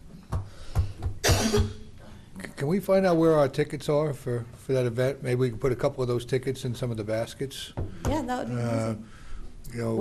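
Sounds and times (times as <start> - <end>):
person coughing: 1.2 - 1.9.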